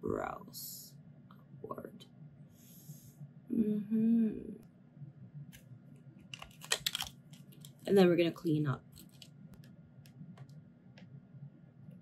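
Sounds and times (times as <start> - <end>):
plastic package clicking: 6.3 - 7.8.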